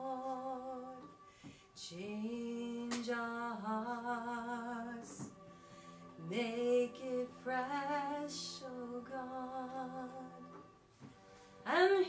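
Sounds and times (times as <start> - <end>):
woman singing: 0.0 - 1.2, 1.8 - 5.4, 6.2 - 10.5, 11.6 - 12.0.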